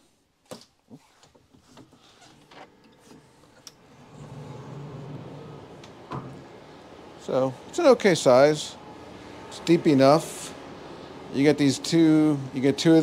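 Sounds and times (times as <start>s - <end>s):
outdoor noise: 0.4s - 13.0s
steady low hum: 2.8s - 13.0s
sliding door clicks and knocks: 4.0s - 6.5s.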